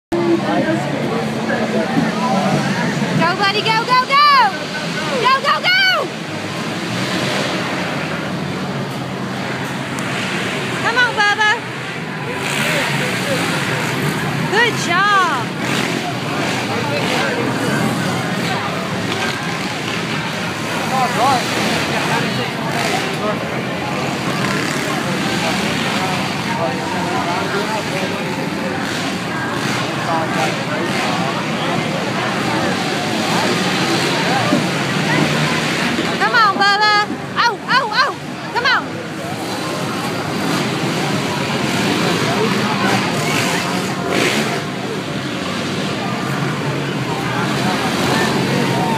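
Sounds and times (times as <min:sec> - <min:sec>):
crowd chatter: 0:00.1 - 0:48.9
dirt bike engines racing: 0:00.1 - 0:48.9
faint voices: 0:00.1 - 0:48.9.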